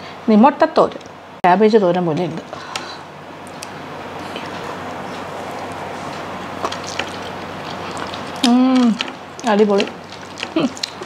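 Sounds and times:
chewing clicks: 6.6s - 11.0s.

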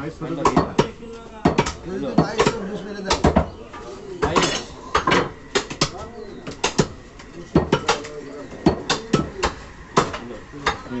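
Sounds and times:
cleaver chopping meat on wood: 0.4s - 3.5s, 4.2s - 7.0s.

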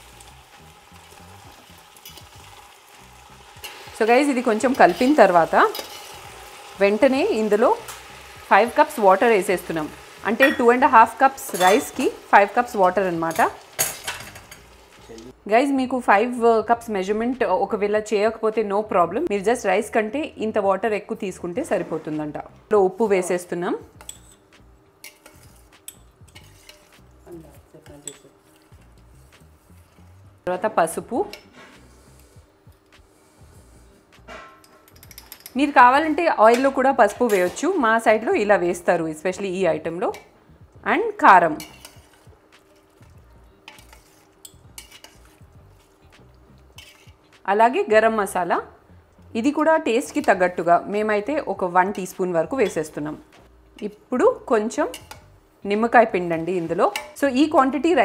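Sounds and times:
rice sizzling in hot oil: 0.0s - 15.4s, 22.9s - 33.9s, 41.2s - 47.5s, 50.0s - 58.0s
spoon clinking against pot: 5.7s - 6.2s, 10.3s - 10.8s, 11.4s - 12.0s, 24.0s - 24.4s, 25.0s - 27.0s, 27.9s - 28.7s, 34.4s - 35.8s, 41.6s - 42.8s, 43.6s - 45.3s, 54.9s - 55.8s, 56.9s - 57.2s
spoon scraping through rice: 5.7s - 6.4s, 24.0s - 30.2s, 41.6s - 46.1s, 46.7s - 47.3s.

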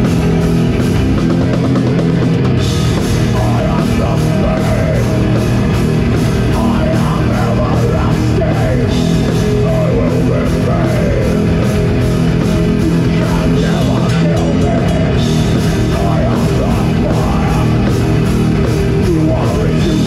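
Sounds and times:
bass guitar: 0.0s - 20.0s
distorted electric guitar: 0.0s - 20.0s
drum kit beat: 0.0s - 20.0s.

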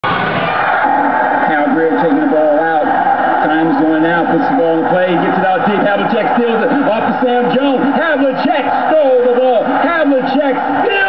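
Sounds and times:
man commentating: 0.8s - 11.0s.

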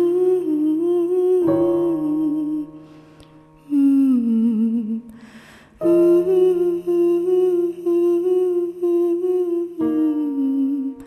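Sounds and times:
person humming a slow melody: 0.0s - 11.0s.

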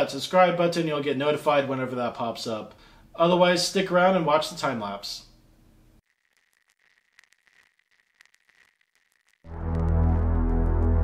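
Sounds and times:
faint scattered ticks: 6.0s - 9.5s.

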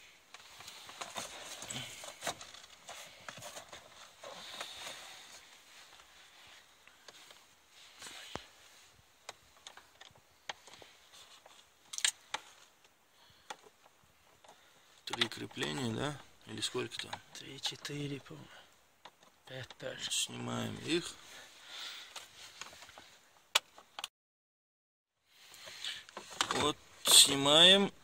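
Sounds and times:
faint plastic rustling: 0.2s - 24.0s, 25.3s - 27.8s.

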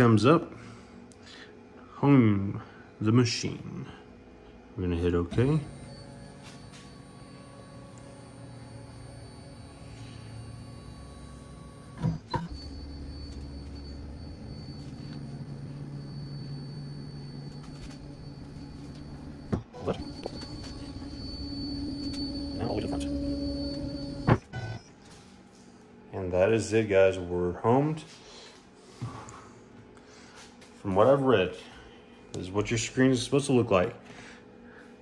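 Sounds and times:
stepper motor whine: 5.3s - 25.0s.

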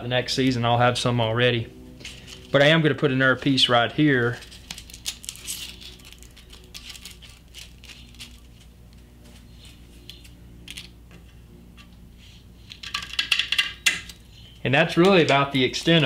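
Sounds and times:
grip tape taps and crinkles: 4.4s - 9.0s.

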